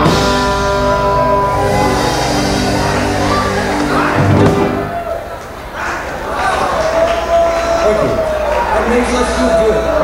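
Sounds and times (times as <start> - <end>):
rock band holding a chord: 0.0 - 5.4.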